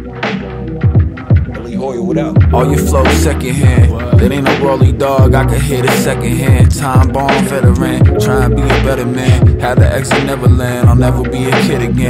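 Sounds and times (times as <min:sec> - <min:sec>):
looping instrumental sample: 0:01.1 - 0:12.0
deep booming bass kicks: 0:02.4 - 0:05.6, 0:06.4 - 0:11.2.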